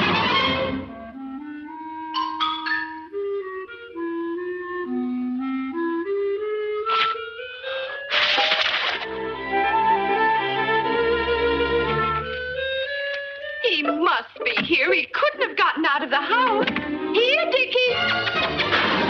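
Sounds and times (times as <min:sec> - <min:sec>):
low clarinet-like woodwind line: 0:00.8 - 0:08.2, 0:09.1 - 0:13.6.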